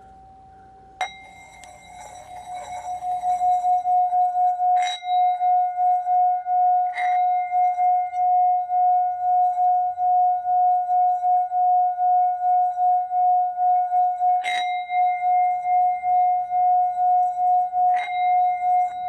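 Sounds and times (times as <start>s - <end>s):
singing bowl pulsing tone: 0.0s - 19.0s
mallet knocking bowl rim: 1.0s - 3.8s.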